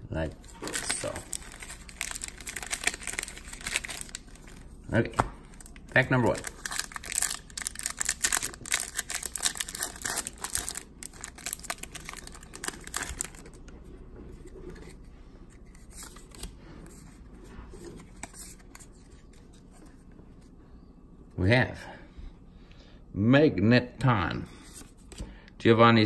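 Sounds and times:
cards rustling: 0.3 - 20.5
foil wrapper tearing and crinkling: 0.6 - 4.6, 5.5 - 13.6.

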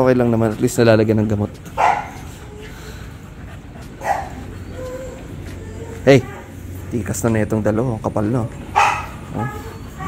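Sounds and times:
puppy whining: 1.7 - 6.9, 8.6 - 10.0
puppy barking: 1.8 - 2.2, 4.0 - 4.9, 8.7 - 10.0.

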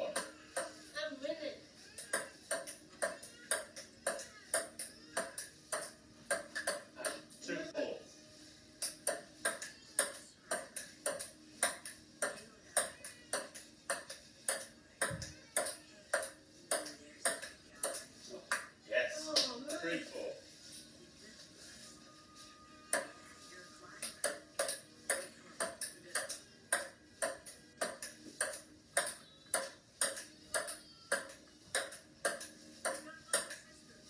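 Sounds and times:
ping-pong ball clicking: 2.0 - 7.2, 8.8 - 18.7, 24.0 - 33.6.

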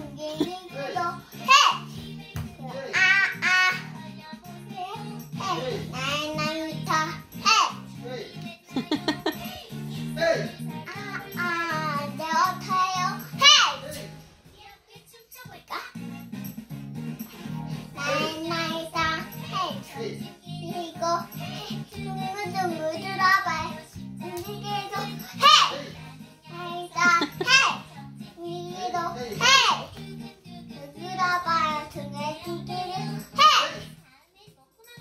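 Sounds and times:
child singing: 0.0 - 16.0, 18.0 - 35.0
song accompaniment: 0.0 - 34.1.

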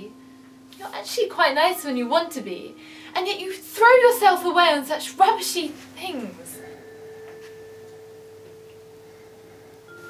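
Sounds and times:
soft sustained film score tone: 5.2 - 10.0.

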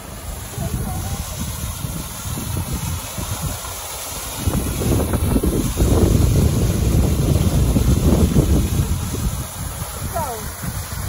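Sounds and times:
waterfall splashing into pool: 0.0 - 11.0
wind buffeting microphone: 0.0 - 11.0.

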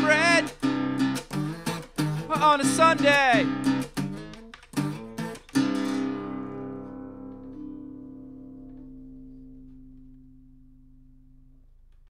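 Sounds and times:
guitar chord ringing out: 5.0 - 11.8.

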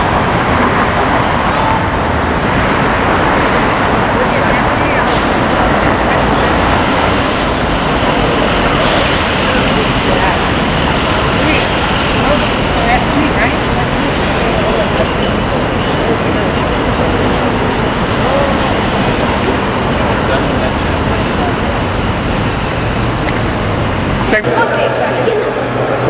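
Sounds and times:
indistinct chatter: 0.0 - 26.0
traffic noise: 0.0 - 26.0.

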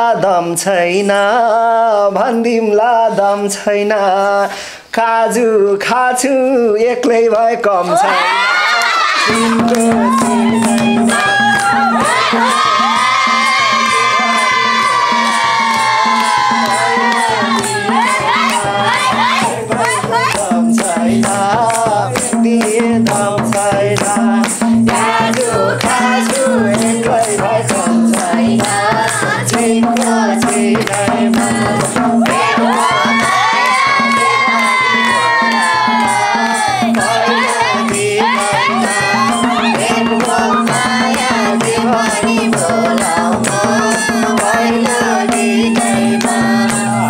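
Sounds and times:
group cheering: 7.8 - 20.8, 24.9 - 47.0
hand clapping: 8.8 - 46.9
madal drum beat: 9.0 - 47.0.

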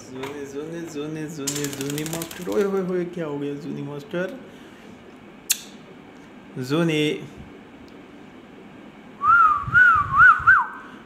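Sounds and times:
person whistling: 9.2 - 11.0.

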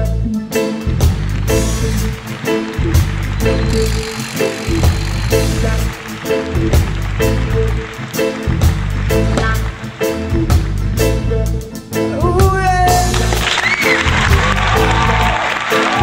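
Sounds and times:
deep electric bass line: 0.0 - 13.5, 14.1 - 15.4
steady drum beat: 0.9 - 16.0
electric guitar chord strokes: 2.5 - 7.0.

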